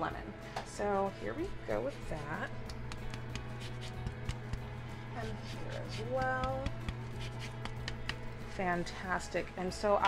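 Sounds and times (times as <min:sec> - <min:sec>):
steady low hum: 0:00.3 - 0:09.9
grater scratching lemon: 0:01.5 - 0:08.2.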